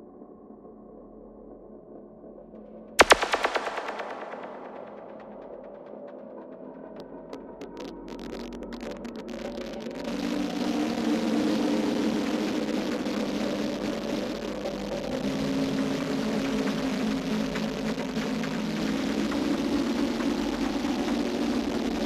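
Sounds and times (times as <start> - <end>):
droning electronic music: 3.0 - 22.0.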